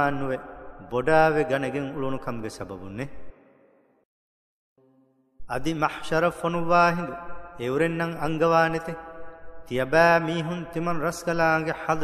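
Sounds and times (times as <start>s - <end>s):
man chanting melodic recitation: 0.0s - 3.1s, 5.5s - 12.0s.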